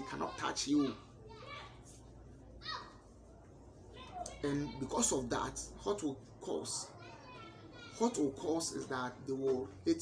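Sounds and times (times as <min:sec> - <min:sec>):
faint children's voices: 0:00.0 - 0:10.0.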